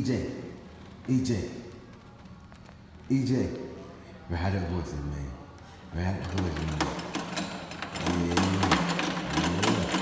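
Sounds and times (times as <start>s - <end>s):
ride clicks and rattles: 6.2s - 10.0s.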